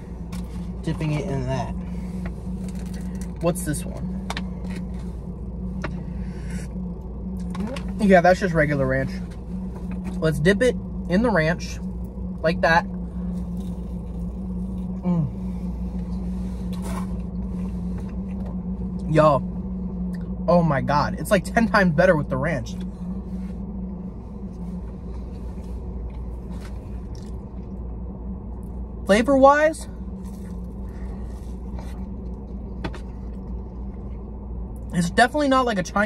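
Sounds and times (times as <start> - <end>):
car idling hum: 0.0 - 36.0
chewing crisp food: 13.3 - 15.0, 26.1 - 27.7, 30.2 - 34.2.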